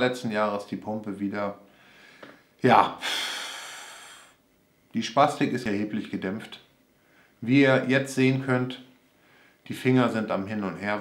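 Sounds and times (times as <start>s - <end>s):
man sighing: 3.0s - 4.4s.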